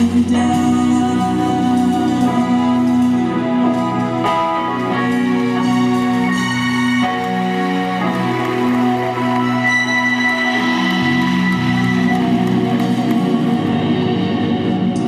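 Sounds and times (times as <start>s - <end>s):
electric bass guitar: 0.0s - 15.0s
synthesizer held chords: 0.0s - 15.0s.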